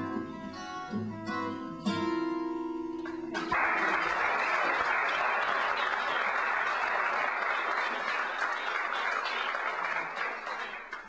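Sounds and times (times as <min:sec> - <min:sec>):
audience applauding: 0:03.3 - 0:11.0.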